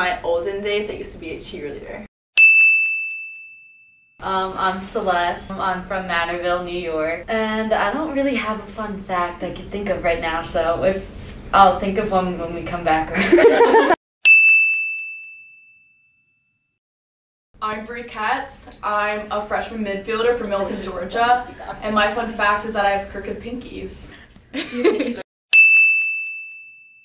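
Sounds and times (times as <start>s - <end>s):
bright bell ding: 2.4s - 4.2s, 14.2s - 16.4s, 25.5s - 27.0s.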